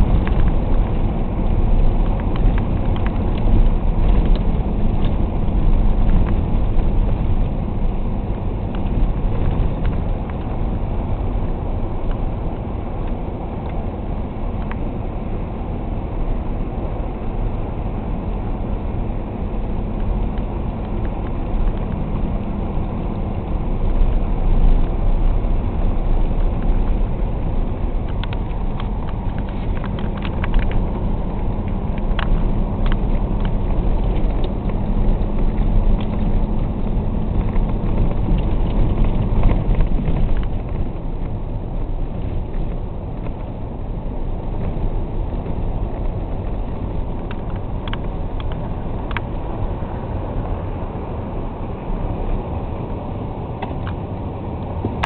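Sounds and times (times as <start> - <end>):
light clicks and rattles: 23.9 - 41.4, 44.5 - 49.7.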